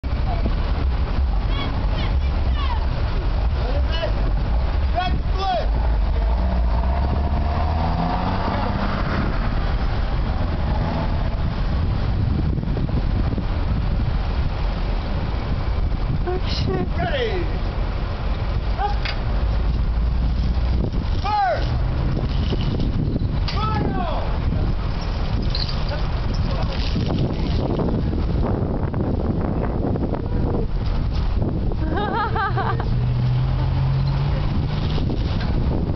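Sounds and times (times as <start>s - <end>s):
low outdoor rumble: 0.0s - 35.9s.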